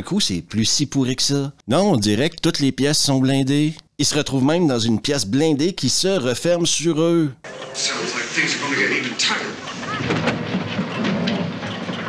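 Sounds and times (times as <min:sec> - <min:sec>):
dense rumbling with crackling: 0:09.7 - 0:12.0.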